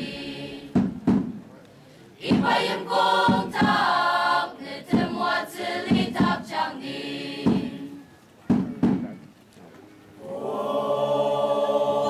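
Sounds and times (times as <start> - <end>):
group chanting folk song: 0.0 - 1.3, 2.2 - 8.1, 10.2 - 12.0.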